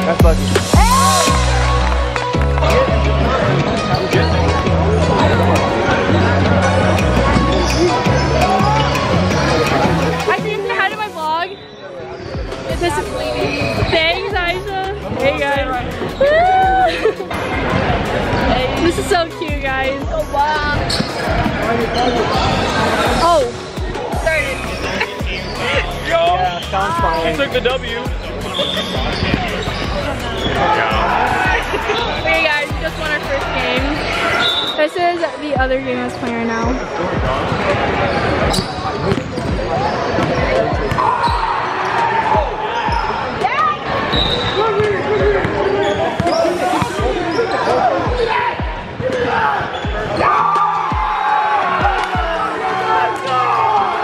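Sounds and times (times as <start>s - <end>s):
chatter of voices: 0.0s - 54.0s.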